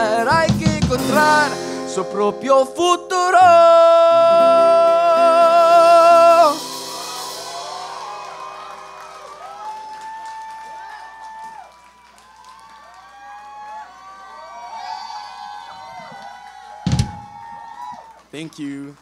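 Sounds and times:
song last chord: 0.0s - 9.6s
audience cheering and whooping: 6.0s - 18.4s
microphone handling thump: 16.9s - 17.4s.

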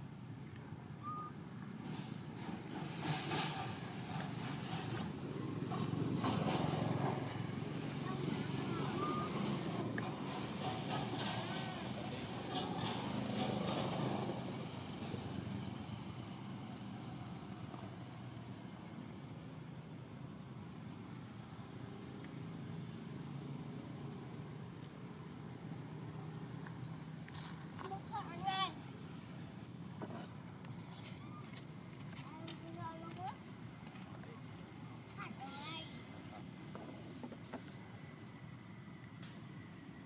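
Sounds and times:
faint voices: 7.7s - 13.8s.

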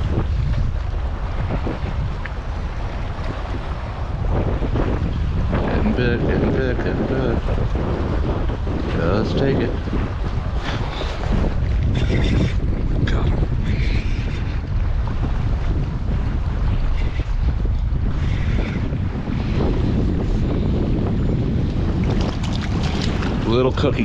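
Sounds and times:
water slapping against kayak: 0.0s - 24.0s
wind buffeting microphone: 0.0s - 24.0s.

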